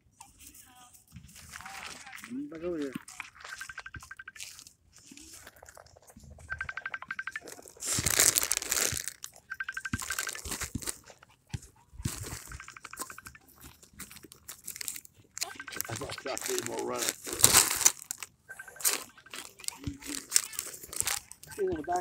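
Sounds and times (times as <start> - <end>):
rustling on phone microphone: 0.3 - 15.1.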